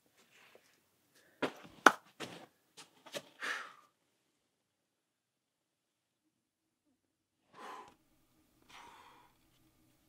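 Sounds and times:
taps and scuffs: 1.2 - 3.4.

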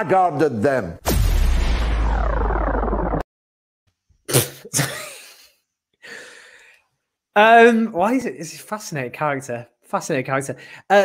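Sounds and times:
man laughing: 4.6 - 5.6.

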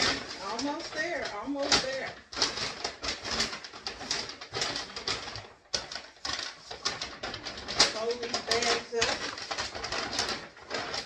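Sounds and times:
paper bag rustling and crinkling: 0.0 - 11.0.

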